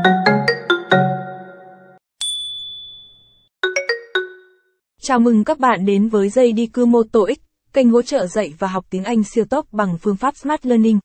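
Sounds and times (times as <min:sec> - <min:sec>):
chime-like logo jingle: 0:00.3 - 0:04.8.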